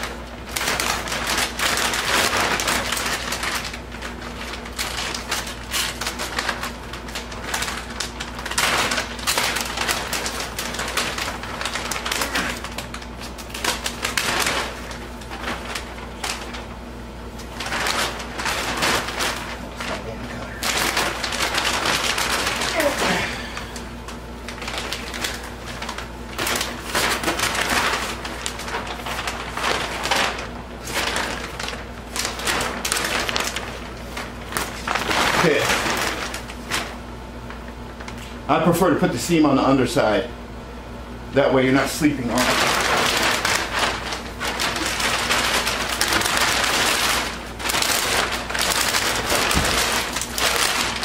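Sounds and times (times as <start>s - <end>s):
plastic sheeting crinkling: 0.0s - 51.0s.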